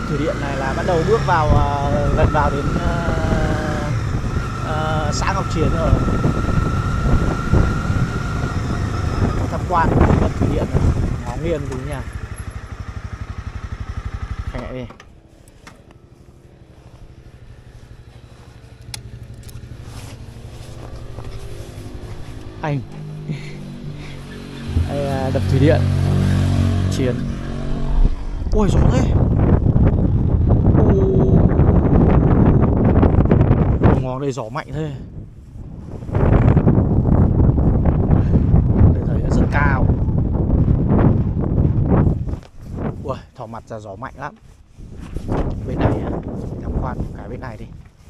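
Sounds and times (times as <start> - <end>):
wind buffeting microphone: 0.0 - 14.6, 16.3 - 48.0
motorcycle engine idling: 10.4 - 21.3.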